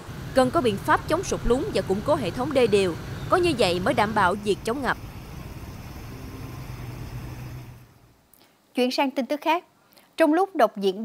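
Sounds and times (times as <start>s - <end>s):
motorbike engine humming: 0.0s - 8.2s
street traffic noise: 0.0s - 8.2s.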